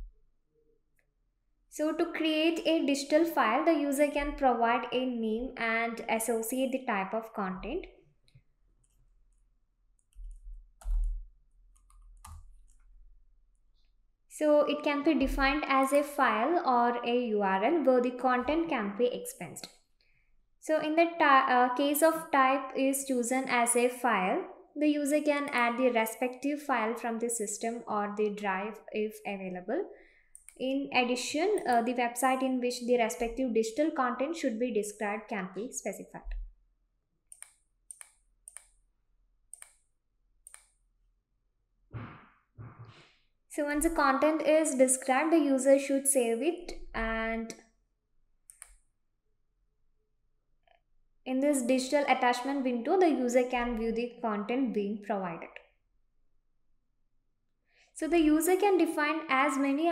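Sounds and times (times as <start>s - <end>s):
computer keyboard clicks: 10.0s - 12.9s
faint computer mouse clicks: 30.3s - 30.6s, 37.3s - 38.8s, 39.5s - 39.8s, 40.4s - 40.8s, 48.5s - 48.8s.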